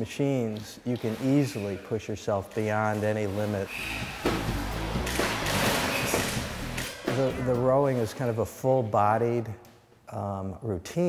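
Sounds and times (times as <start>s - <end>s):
background music: 3.0s - 9.2s
rowing machine whoosh: 3.2s - 7.2s.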